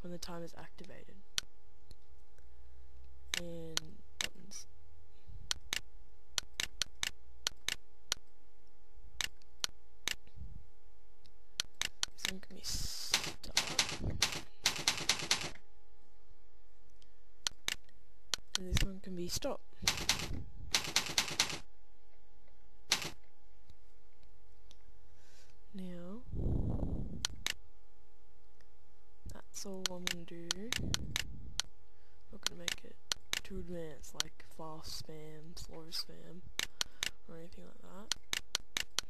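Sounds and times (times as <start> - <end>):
steady low hum: 0.0 - 39.0
computer mouse clicks: 5.5 - 8.3, 11.6 - 12.4, 17.4 - 18.9, 29.8 - 31.7, 38.1 - 39.0
computer keyboard typing: 13.1 - 15.6, 19.8 - 21.6, 22.9 - 23.2.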